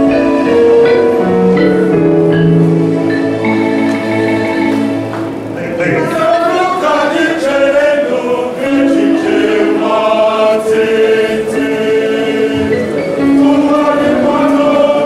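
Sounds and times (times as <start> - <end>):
mixed choir singing a hymn: 2.6 - 15.0.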